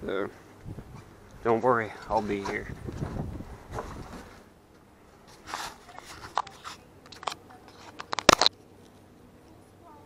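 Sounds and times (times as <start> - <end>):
camera handling rustle: 5.3 - 9.0.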